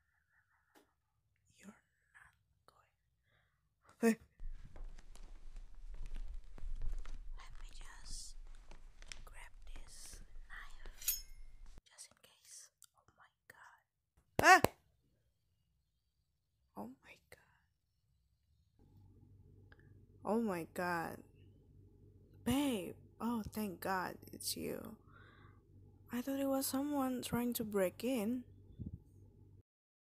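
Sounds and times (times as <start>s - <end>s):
soft whispering: 1.5s - 3.1s, 6.8s - 14.0s, 16.8s - 17.7s.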